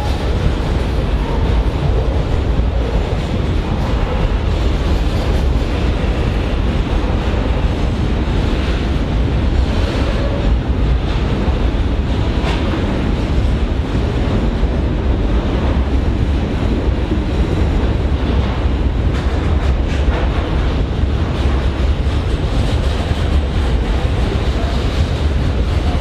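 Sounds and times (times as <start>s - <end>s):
train wheels rumbling on rails: 0.0s - 26.0s.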